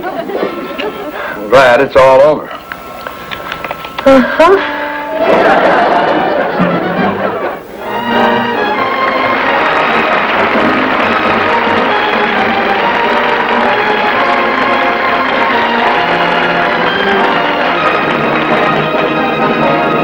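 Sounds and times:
sitcom theme music: 0:04.5 - 0:20.0.

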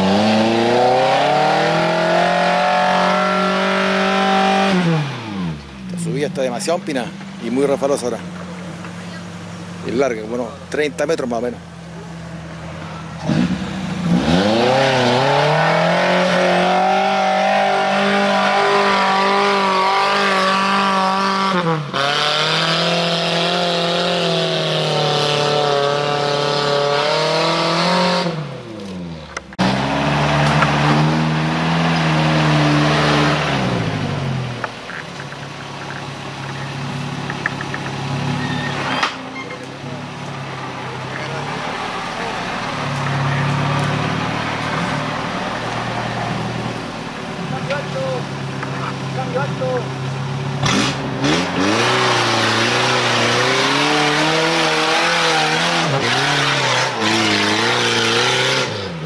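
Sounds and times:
off-road engines revving: 0:00.0 - 0:59.0.

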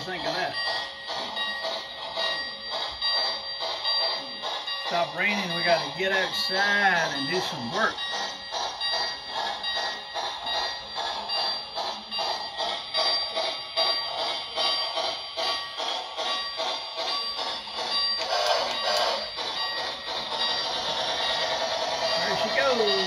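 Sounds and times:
bell-like ringing: 0:00.0 - 0:23.0.

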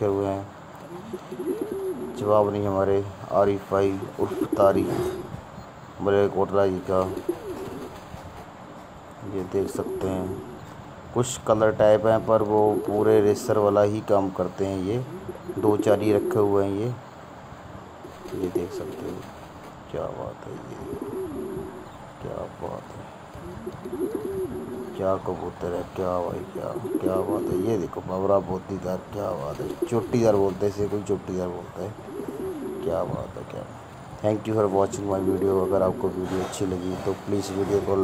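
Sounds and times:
pigeon cooing: 0:00.8 - 0:02.6, 0:03.6 - 0:05.4, 0:06.9 - 0:08.3, 0:09.3 - 0:10.8, 0:12.0 - 0:13.7, 0:15.0 - 0:16.8, 0:18.0 - 0:19.5, 0:20.4 - 0:22.0, 0:23.3 - 0:27.9, 0:29.3 - 0:30.9, 0:31.6 - 0:33.4, 0:34.6 - 0:37.9.

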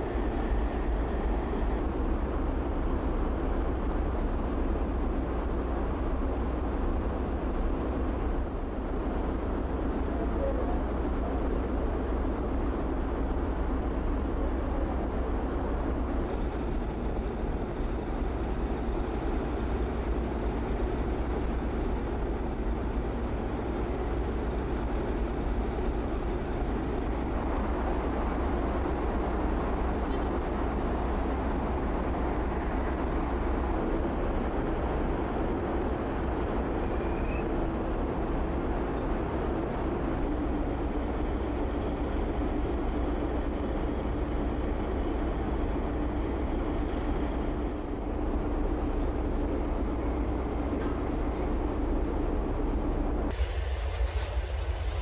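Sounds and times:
ship engines rumbling: 0:00.0 - 0:55.0.

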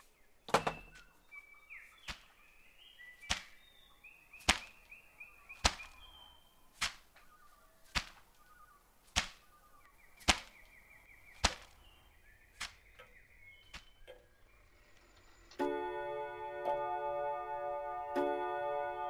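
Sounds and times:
high birdlike chirps: 0:00.0 - 0:15.9
skipping rope slapping ground: 0:03.3 - 0:03.6, 0:04.4 - 0:05.0, 0:05.6 - 0:06.0, 0:06.8 - 0:07.1, 0:07.9 - 0:08.2, 0:09.1 - 0:09.4, 0:10.2 - 0:10.8, 0:11.4 - 0:11.8.

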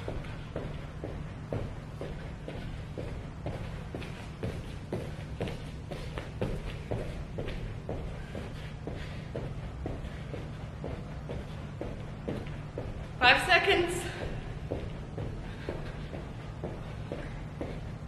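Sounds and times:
low hum: 0:00.0 - 0:18.0.

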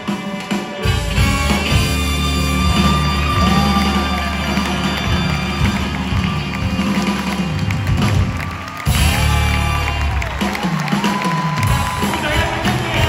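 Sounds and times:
live band playing amplified music: 0:00.0 - 0:13.0.

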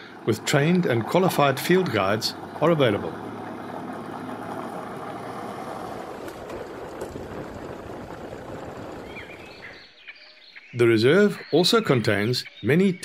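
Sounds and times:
vehicle engine drone: 0:00.0 - 0:10.0
tyres on gravel: 0:00.1 - 0:09.9.

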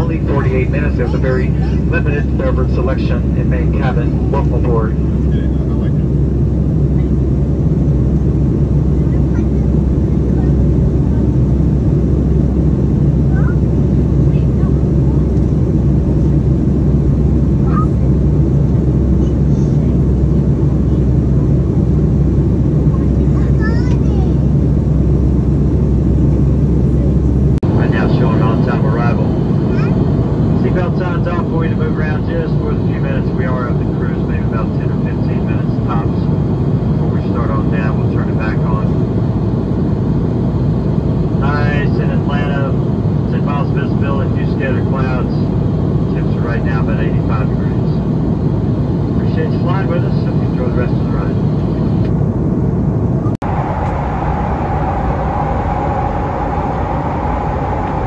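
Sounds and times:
people talking indistinctly: 0:00.0 - 0:06.2, 0:08.8 - 0:11.4, 0:22.8 - 0:24.6, 0:27.0 - 0:36.4, 0:37.0 - 0:39.0, 0:41.4 - 0:45.5, 0:46.1 - 0:48.0, 0:49.1 - 0:51.4
airplane cabin drone: 0:00.0 - 0:58.0.

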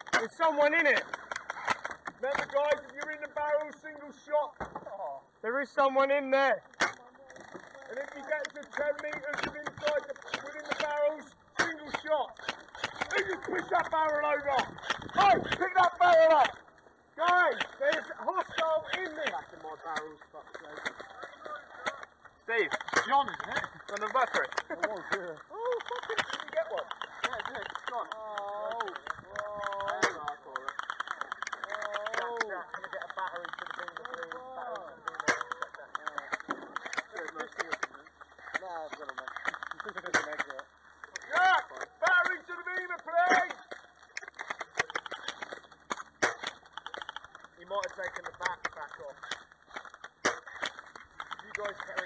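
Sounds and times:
airsoft guns firing: 0:00.0 - 0:04.2, 0:06.0 - 0:52.0.

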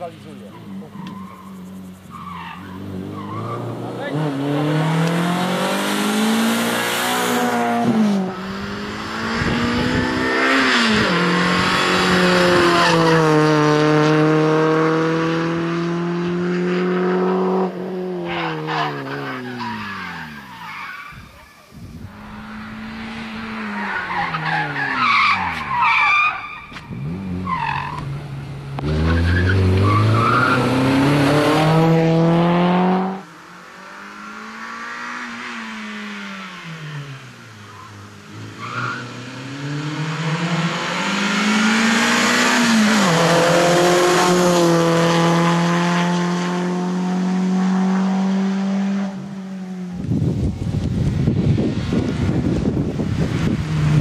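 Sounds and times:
rally car engine revving: 0:00.0 - 0:20.3, 0:21.6 - 0:54.0
tyres squealing: 0:00.4 - 0:04.2, 0:23.5 - 0:28.1.

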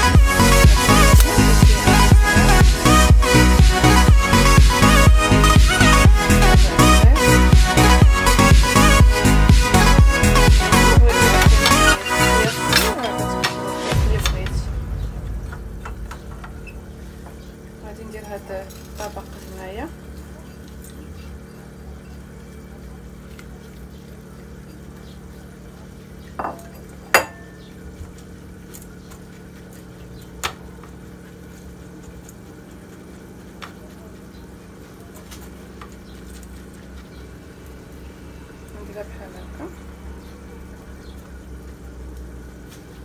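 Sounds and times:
steady low hum: 0:00.0 - 0:43.0.

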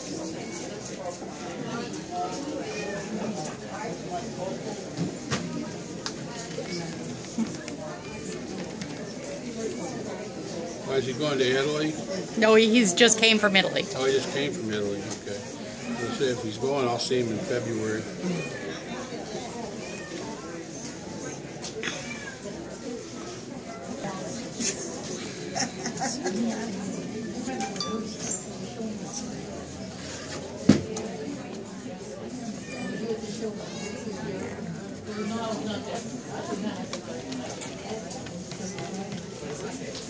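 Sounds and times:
indistinct chatter: 0:00.0 - 0:40.0
people talking: 0:00.0 - 0:40.0.

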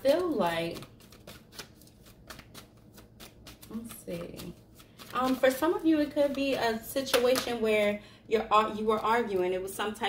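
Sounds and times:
cards being shuffled: 0:00.0 - 0:06.6.

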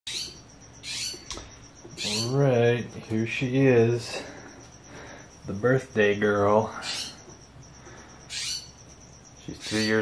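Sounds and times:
bird calling: 0:00.1 - 0:02.5, 0:06.6 - 0:10.0.

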